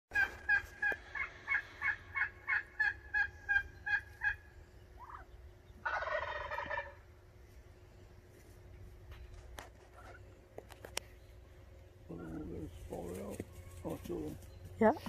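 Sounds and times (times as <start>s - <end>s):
turkey yelps: 0.2s - 4.4s, 5.8s - 7.0s
turkey gobble: 0.2s - 7.1s, 9.8s - 10.2s, 12.1s - 14.2s.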